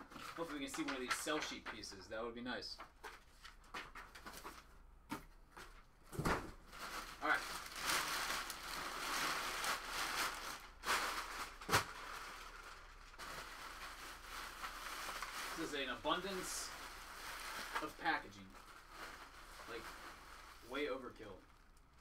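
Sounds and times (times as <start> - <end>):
packaging rustling and crinkling: 0.0 - 1.8, 5.6 - 22.0.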